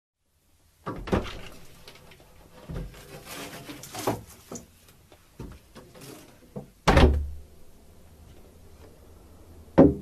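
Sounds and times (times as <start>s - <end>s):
window slamming: 6.8s - 7.4s.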